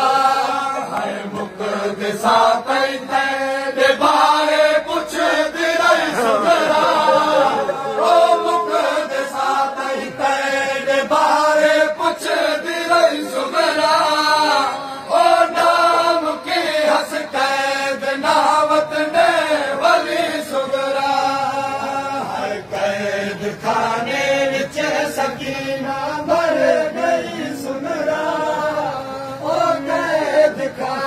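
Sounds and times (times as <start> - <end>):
men chanting in unison: 0.0 - 31.0.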